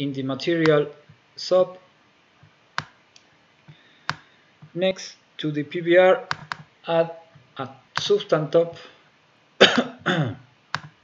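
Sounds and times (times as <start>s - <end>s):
man coughing: 9.6s - 10.5s.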